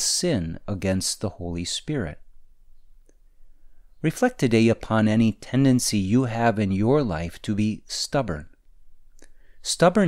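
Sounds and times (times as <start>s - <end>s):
person speaking: 0.0s - 2.4s, 4.0s - 10.0s.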